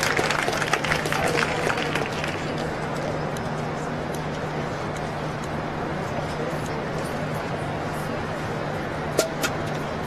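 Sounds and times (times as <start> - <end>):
outdoor ambience: 0.0 - 10.0.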